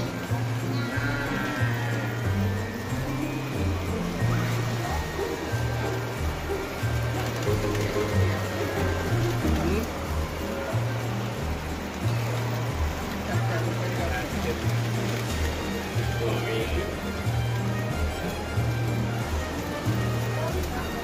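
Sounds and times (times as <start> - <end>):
crowd chatter in echoing hall: 0.0 - 21.0.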